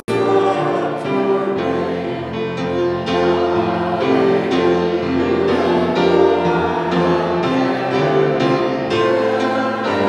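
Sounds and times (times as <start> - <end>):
group singing a hymn: 0.0 - 10.0
instrumental accompaniment: 0.0 - 10.0.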